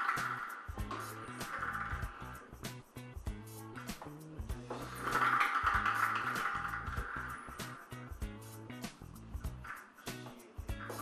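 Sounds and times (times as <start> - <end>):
balls tumbling in ball-draw drum: 0.0 - 2.5, 3.8 - 8.2
background music with steady beat: 0.0 - 11.0.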